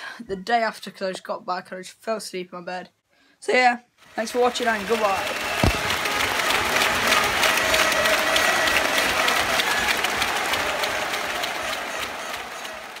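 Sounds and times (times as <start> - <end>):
crowd applauding: 4.2 - 13.0.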